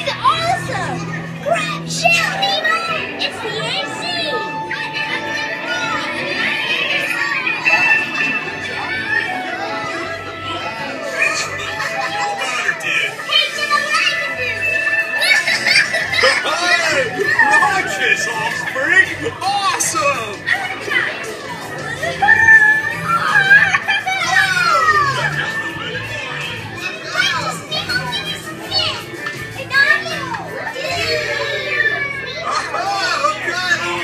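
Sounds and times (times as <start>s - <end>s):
background music: 0.0s - 34.0s
excited children's voices: 0.0s - 34.0s.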